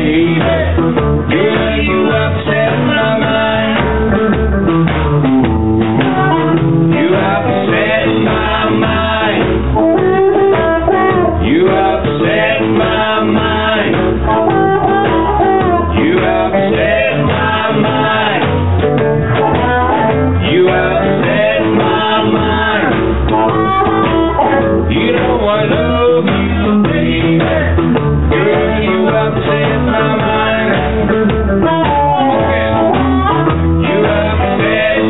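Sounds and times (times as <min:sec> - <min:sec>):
drums: 0:00.0 - 0:35.0
electric guitar: 0:00.0 - 0:35.0
upright bass: 0:00.0 - 0:35.0
person singing: 0:06.0 - 0:18.6, 0:19.3 - 0:35.0.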